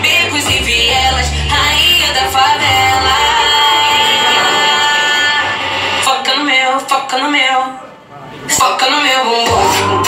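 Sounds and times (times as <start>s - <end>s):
heavy bass beat: 0.0s - 4.8s, 9.4s - 10.0s
pop song vocals: 0.0s - 10.0s.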